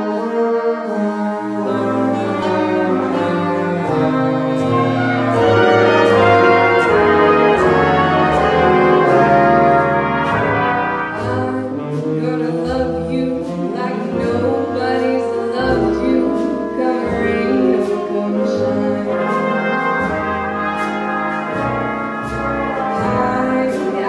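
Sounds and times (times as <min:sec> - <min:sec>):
brass chords: 0:00.0 - 0:24.0
bass notes: 0:00.8 - 0:24.0.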